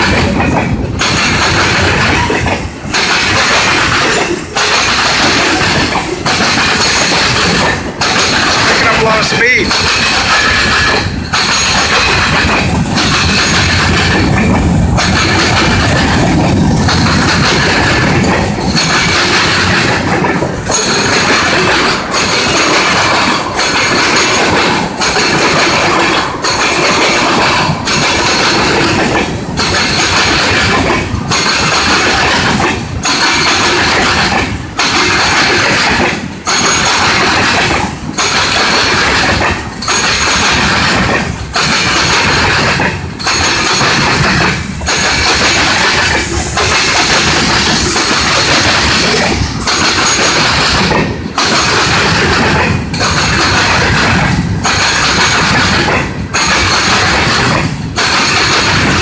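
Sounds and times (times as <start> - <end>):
freight train rolling past: 0.0 - 59.0.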